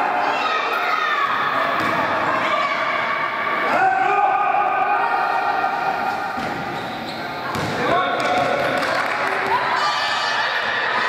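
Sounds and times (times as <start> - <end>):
basketball bouncing on court: 7.5 - 8.9.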